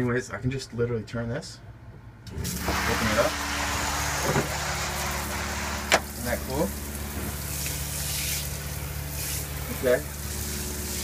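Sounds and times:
steady low hum: 0:00.0 - 0:11.0
shower spraying onto shower pan: 0:02.4 - 0:11.0.

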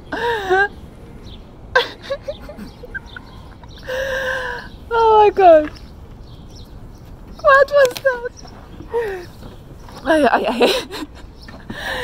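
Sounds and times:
woman squealing and laughing: 0:01.8 - 0:04.4.

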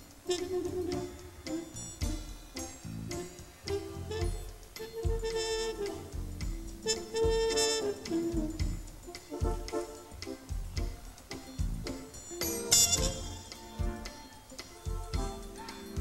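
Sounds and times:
live band playing: 0:00.0 - 0:16.0.

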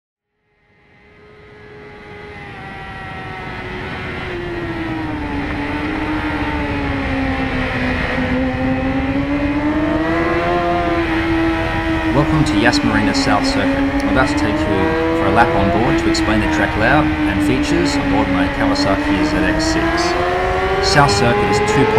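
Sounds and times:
motorcycle engine at high revs: 0:01.5 - 0:21.9.

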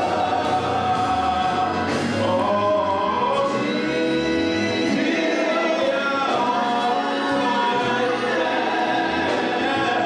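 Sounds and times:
backing singers: 0:00.0 - 0:10.0
man singing gospel lead: 0:00.0 - 0:10.0.

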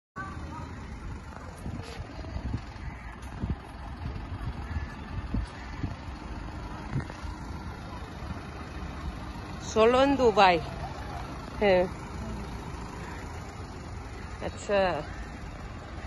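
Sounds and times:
truck engine rumbling: 0:00.2 - 0:16.0.

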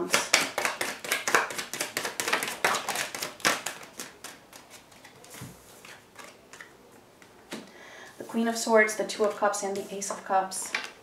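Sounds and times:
cards being shuffled: 0:00.0 - 0:07.7.

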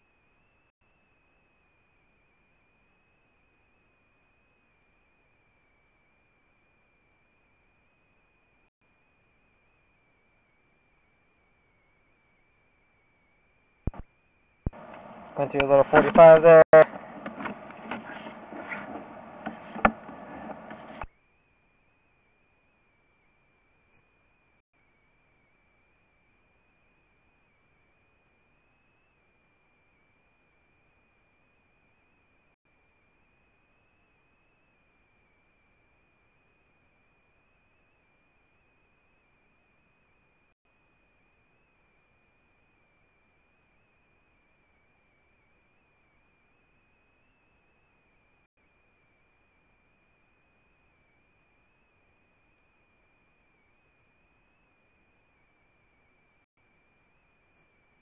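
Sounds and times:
high-pitched electronic whine: 0:00.0 - 0:58.0.

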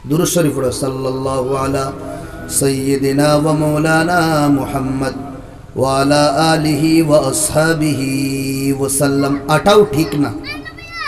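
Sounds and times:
man chanting through microphone: 0:00.0 - 0:10.4.

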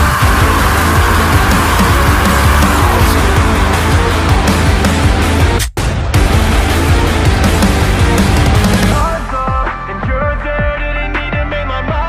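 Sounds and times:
deep sliding bass hits: 0:00.0 - 0:09.2
aggressive rap beat: 0:00.0 - 0:12.0.

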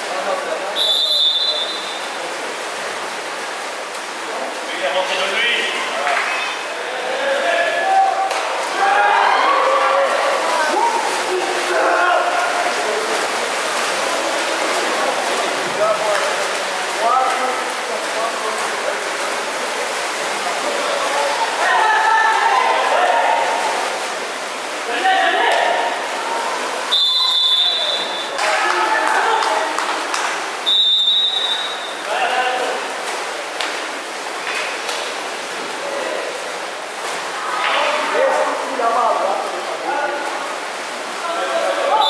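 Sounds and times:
voices in pool hall: 0:00.0 - 0:42.0
water splashing: 0:00.0 - 0:42.0
referee's whistle blast: 0:00.8 - 0:02.0, 0:26.9 - 0:28.3, 0:30.6 - 0:31.9.

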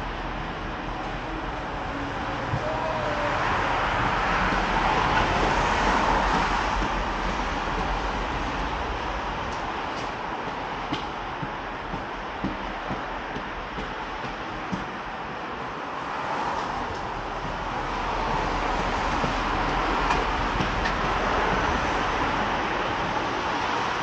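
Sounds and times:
train rumbling past: 0:00.0 - 0:24.0.

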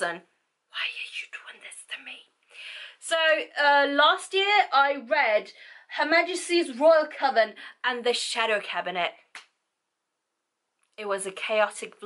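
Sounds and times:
woman whispering: 0:00.7 - 0:03.2.

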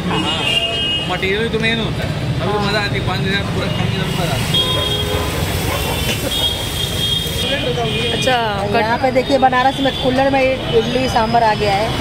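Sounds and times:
low rumble of traffic: 0:00.0 - 0:12.0
voices of people: 0:00.0 - 0:12.0.

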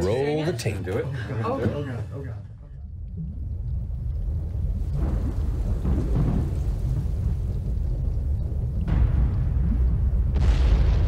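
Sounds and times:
deep low rumble: 0:02.5 - 0:11.0.

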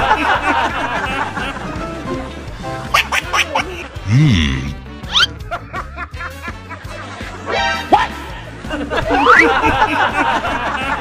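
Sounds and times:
background music: 0:00.0 - 0:11.0
snickering laughter: 0:03.0 - 0:07.5, 0:08.6 - 0:11.0
quick rising whistles: 0:09.1 - 0:09.6.

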